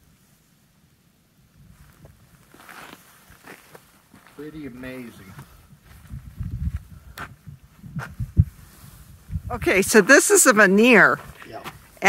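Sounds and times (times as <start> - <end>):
footsteps on gravel: 1.8 - 8.2, 10.0 - 12.0.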